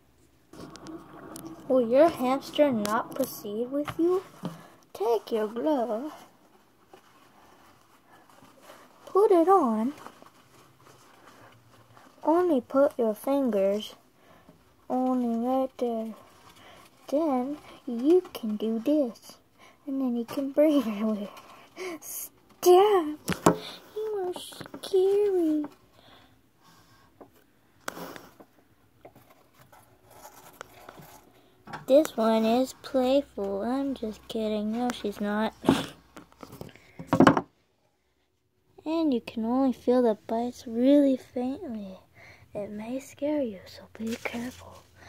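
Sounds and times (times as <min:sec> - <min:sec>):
scratching and rustling on cardboard: 0:29.1 - 0:31.4.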